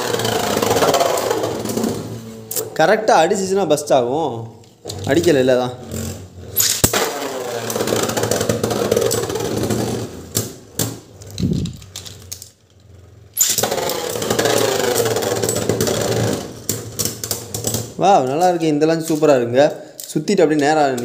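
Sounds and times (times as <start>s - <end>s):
spinning tops whirring and scraping: 0.0s - 2.7s, 4.9s - 18.0s
spinning tops clicking together: 11.2s - 15.8s.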